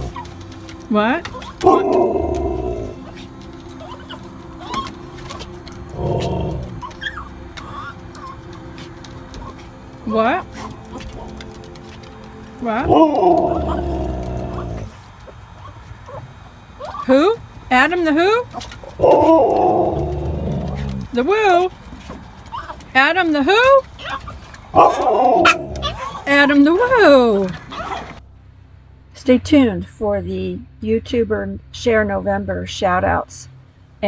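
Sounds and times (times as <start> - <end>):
dog whining: 0.0 - 0.4, 1.2 - 9.7, 12.8 - 17.4, 22.5 - 23.0, 23.9 - 27.0
husky howling: 0.0 - 11.7, 12.7 - 17.4, 18.3 - 21.5, 22.5 - 28.2.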